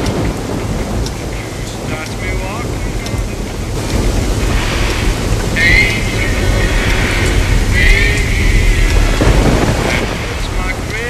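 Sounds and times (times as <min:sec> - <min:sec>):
low rumble of thunder: 0:00.0 - 0:11.0
rain: 0:00.0 - 0:11.0.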